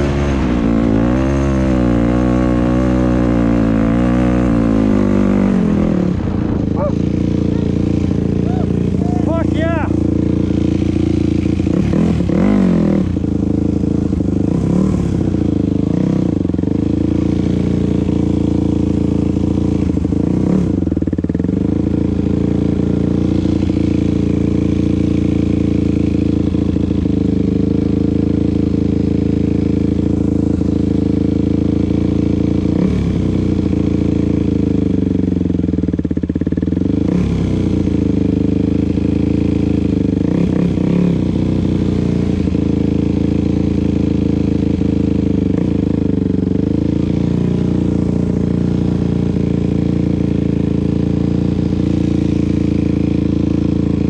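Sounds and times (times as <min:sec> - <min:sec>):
dirt bike engine idling: 0:00.0 - 0:54.0
engine revving: 0:00.0 - 0:54.0.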